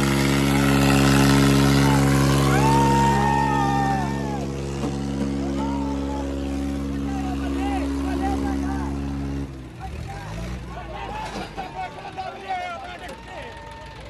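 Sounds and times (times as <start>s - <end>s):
tractor diesel engines droning: 0.0s - 14.0s
men shouting: 0.3s - 8.9s, 9.9s - 14.0s.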